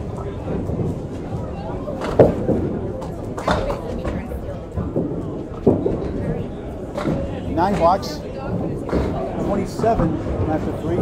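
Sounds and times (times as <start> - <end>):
bowling balls rolling on lanes: 0.0 - 11.0
people talking: 0.0 - 11.0.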